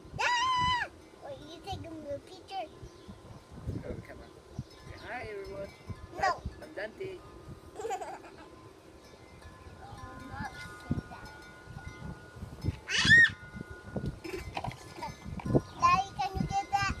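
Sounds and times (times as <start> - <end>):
plastic toys clattering: 14.3 - 15.5.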